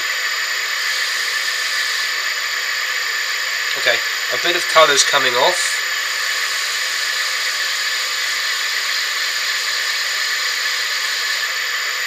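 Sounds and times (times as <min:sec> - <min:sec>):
wood lathe whirring: 0:00.0 - 0:12.0.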